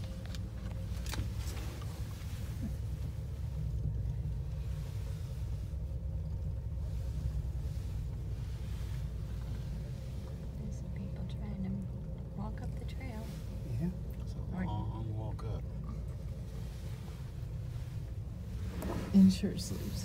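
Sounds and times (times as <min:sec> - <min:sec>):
faint hum: 0:00.0 - 0:20.0
gondola cabin rumble: 0:00.0 - 0:20.0.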